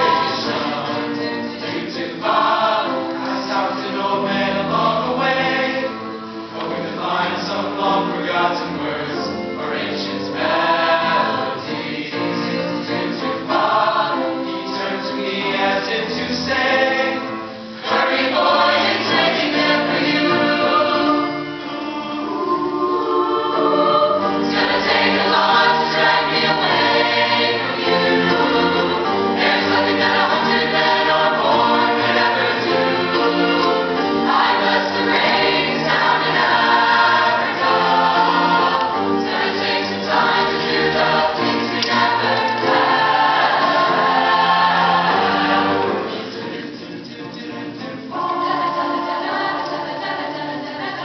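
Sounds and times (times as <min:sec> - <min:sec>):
choir singing in harmony: 0:00.0 - 0:51.0.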